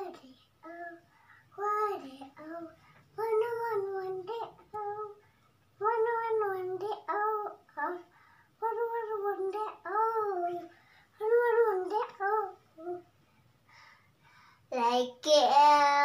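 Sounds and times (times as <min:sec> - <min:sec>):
girl singing: 0:00.0 - 0:13.2, 0:14.7 - 0:16.0.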